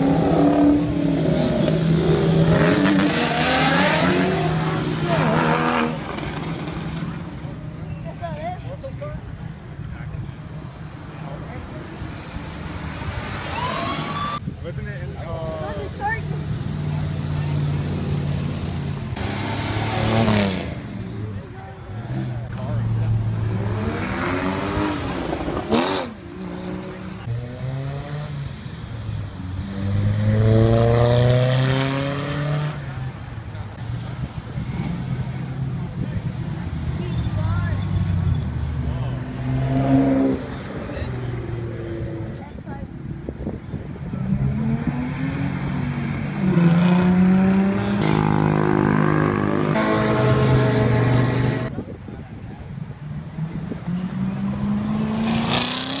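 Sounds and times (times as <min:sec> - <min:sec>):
sports cars accelerating past: 0:22.0 - 0:33.1, 0:44.1 - 0:51.7, 0:53.5 - 0:56.0.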